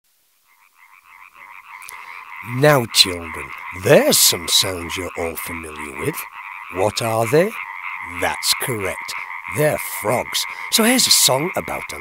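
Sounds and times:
frogs croaking: 0.1s - 12.0s.

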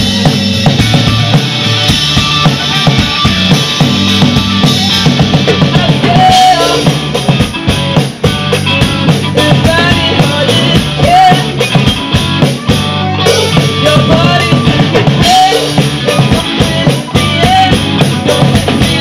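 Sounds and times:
bass guitar: 0.0s - 19.0s
drum kit beat: 0.0s - 19.0s
electric guitar: 0.0s - 19.0s.

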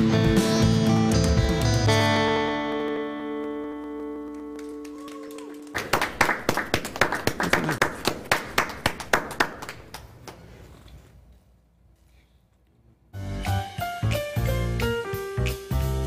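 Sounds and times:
acoustic guitar chord ringing: 1.9s - 3.9s
people clapping: 3.4s - 10.6s.

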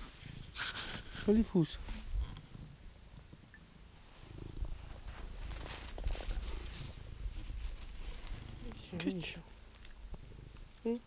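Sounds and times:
hand rubbing on fur: 0.0s - 2.1s, 4.2s - 9.4s
cat purring: 0.0s - 11.0s.

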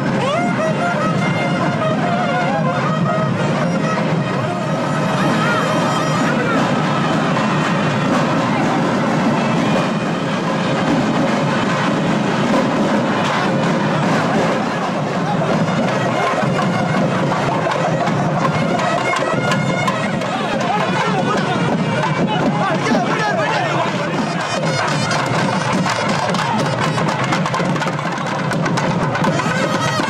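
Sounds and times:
crowd chatter: 0.0s - 30.0s
double-reed oboe melody: 0.1s - 10.8s, 15.3s - 22.2s, 23.8s - 27.6s, 29.2s - 30.0s.

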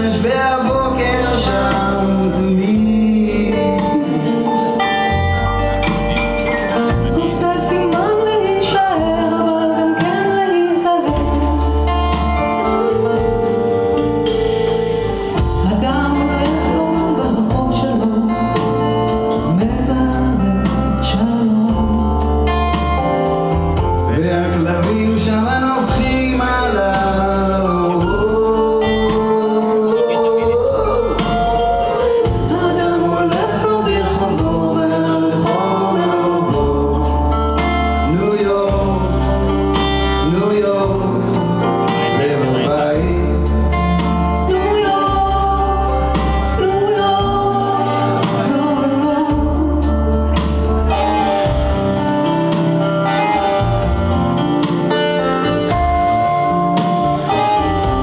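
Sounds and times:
man and woman singing duet: 0.0s - 5.1s, 6.7s - 14.1s, 15.4s - 23.0s, 24.0s - 51.8s
live rock band playing: 0.0s - 58.0s.

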